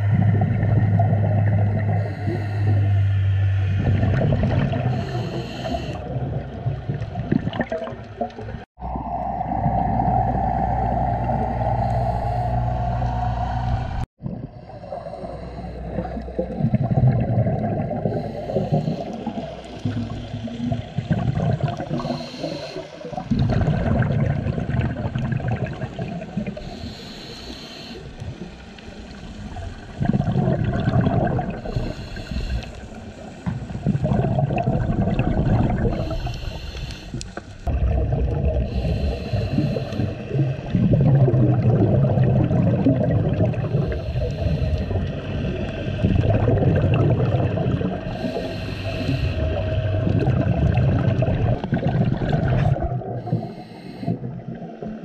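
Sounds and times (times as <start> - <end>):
underwater bubbles gurgling: 0.0 - 55.0.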